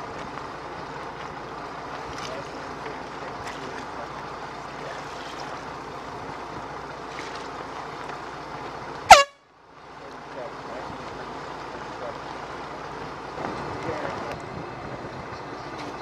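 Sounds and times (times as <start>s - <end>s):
water noise: 0.0s - 16.0s
wind: 0.0s - 16.0s
air horn blast: 9.1s - 9.5s.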